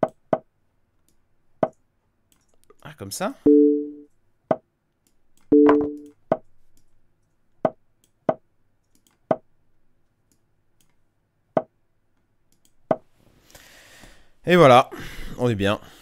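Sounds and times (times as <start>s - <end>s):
two-note chess game sound: 3.5s - 4.1s, 5.5s - 6.1s.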